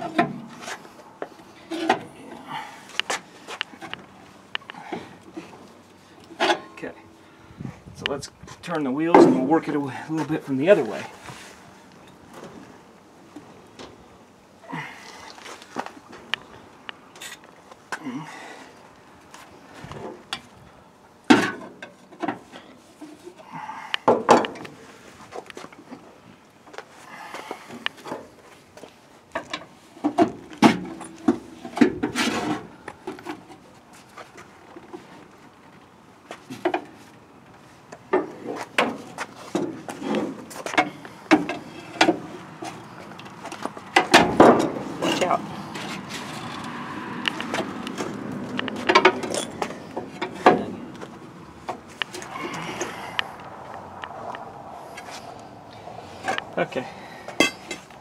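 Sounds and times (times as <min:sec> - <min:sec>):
metal knocks and clunks: 0:43.9 - 0:46.8, 0:47.5 - 0:50.8.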